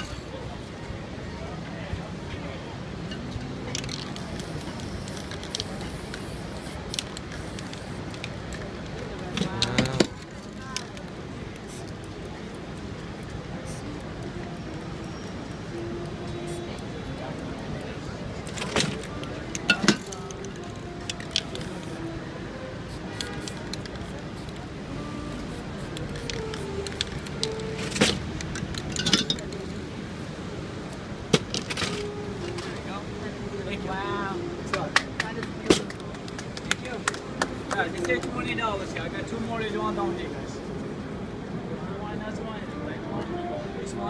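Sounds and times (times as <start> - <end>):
murmur of voices: 0.0 - 44.0
street music: 0.0 - 44.0
spray paint hissing: 3.5 - 8.8, 11.4 - 18.1, 18.9 - 29.0.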